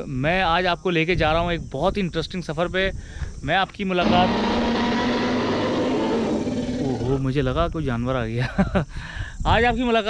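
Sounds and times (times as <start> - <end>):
engine drone with hiss: 4.0 - 7.4.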